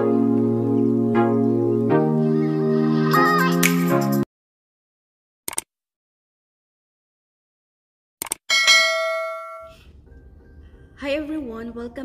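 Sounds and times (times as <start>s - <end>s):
bright bell ding: 8.5s - 9.8s.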